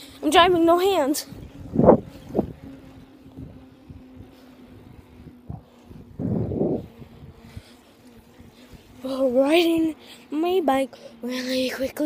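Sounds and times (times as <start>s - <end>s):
faint steady hum: 0.0s - 12.0s
wind on microphone: 0.3s - 10.0s.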